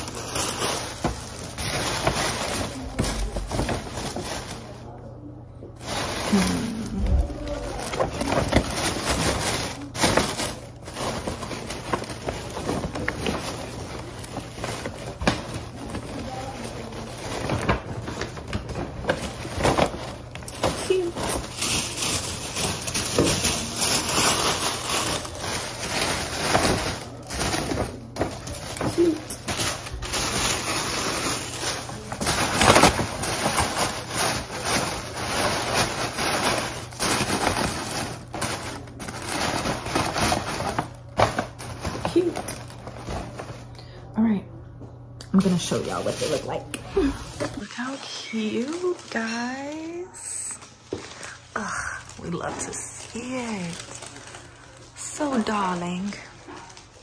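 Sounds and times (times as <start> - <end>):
tissue paper crinkling: 0.0 - 44.1, 45.4 - 57.0.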